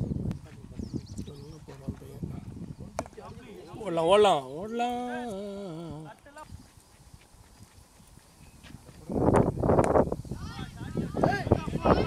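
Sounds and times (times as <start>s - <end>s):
running footsteps on dry ground: 0.0s - 3.3s, 6.0s - 9.8s.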